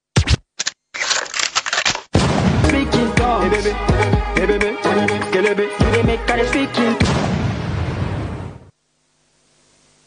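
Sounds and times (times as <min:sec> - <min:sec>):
record scratch noise: 0:00.0 - 0:01.1
sharp hits in dance music: 0:07.0 - 0:08.6.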